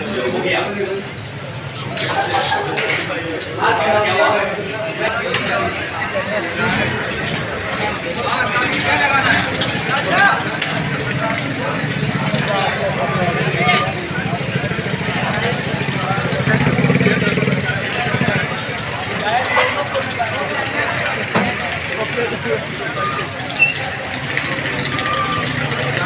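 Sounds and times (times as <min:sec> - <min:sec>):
crowd voices: 0:00.0 - 0:26.0.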